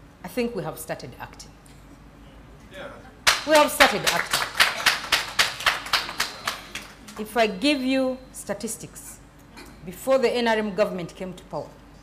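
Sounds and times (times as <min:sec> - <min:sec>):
audience applauding: 0:03.2 - 0:07.3.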